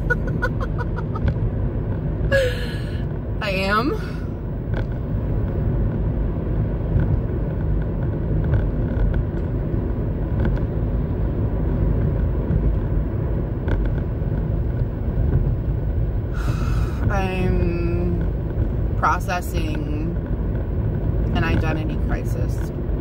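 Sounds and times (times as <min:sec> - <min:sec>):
car rumbling inside cabin: 0:00.0 - 0:23.0.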